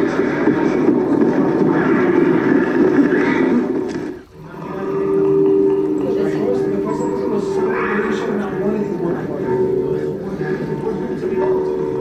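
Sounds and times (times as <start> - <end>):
low steady droning tone: 4.4 - 12.0.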